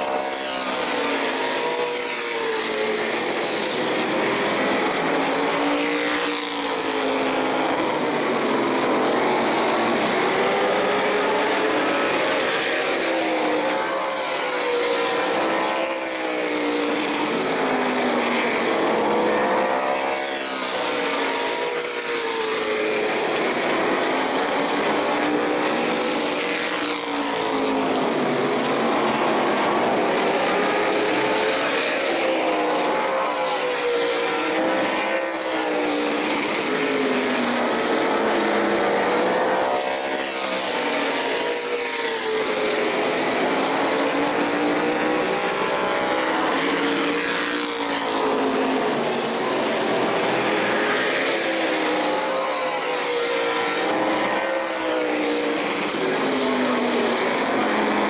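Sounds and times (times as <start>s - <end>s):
race car engines passing by: 0.0s - 58.0s.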